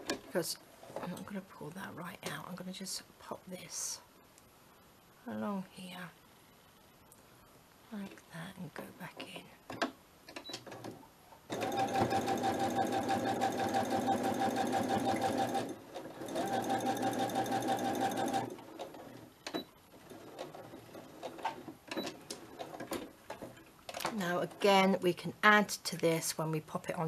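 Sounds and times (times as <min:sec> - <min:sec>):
sewing machine stitching: 0:11.5 - 0:23.0.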